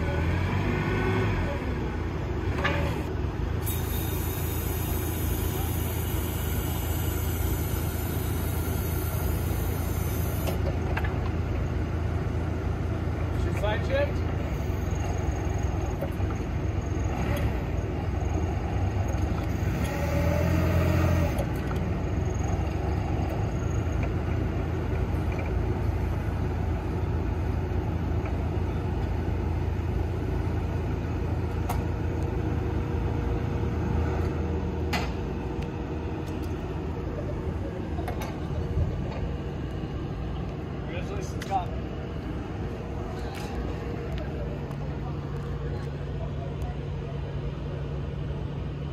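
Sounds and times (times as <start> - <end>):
forklift engine running: 0.0 - 48.9.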